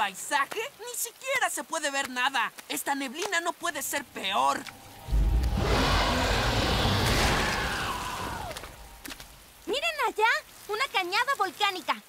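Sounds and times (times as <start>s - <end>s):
deep rumble: 4.6s - 9.4s
hissing whoosh: 4.7s - 9.2s.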